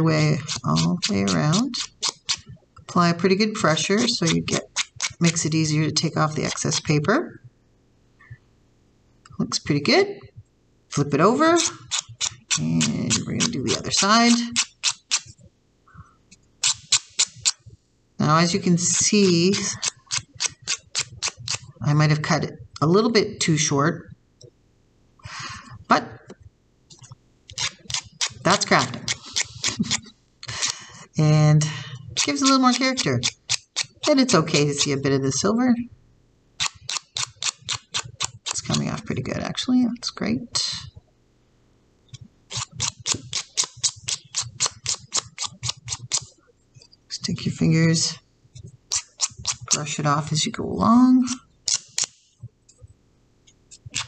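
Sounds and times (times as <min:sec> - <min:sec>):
nail file scraping metal washer: 0:00.4 - 0:02.4, 0:04.0 - 0:05.4, 0:11.3 - 0:15.3, 0:16.6 - 0:17.6, 0:19.0 - 0:21.7, 0:27.5 - 0:30.0, 0:32.2 - 0:35.0, 0:36.6 - 0:39.0, 0:42.5 - 0:46.3, 0:48.9 - 0:49.8, 0:51.7 - 0:52.2, 0:53.7 - 0:54.0.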